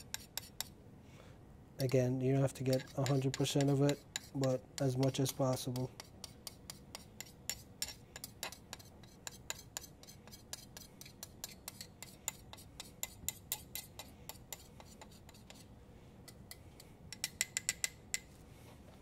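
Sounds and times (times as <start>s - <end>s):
spatula tapping glass mortar: 2.7s - 15.6s, 16.3s - 18.3s.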